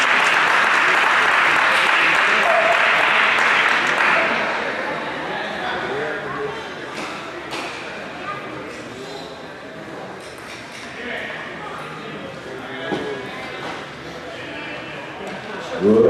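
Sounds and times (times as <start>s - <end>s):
background talk of people: 1.2s - 16.0s.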